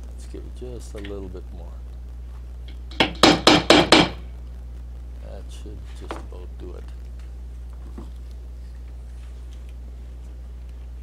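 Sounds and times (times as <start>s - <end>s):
mallet tapping metal tool: 2.9s - 4.2s.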